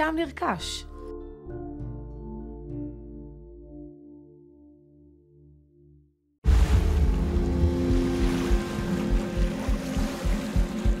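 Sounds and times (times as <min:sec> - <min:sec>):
sea water rumbling and washing: 0:06.4 - 0:11.0
musical drone of steady tones: 0:06.5 - 0:11.0.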